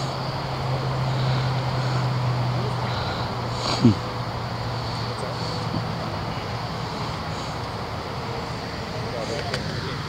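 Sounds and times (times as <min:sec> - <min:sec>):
low engine hum: 0:00.0 - 0:10.0
outdoor noise: 0:00.0 - 0:10.0.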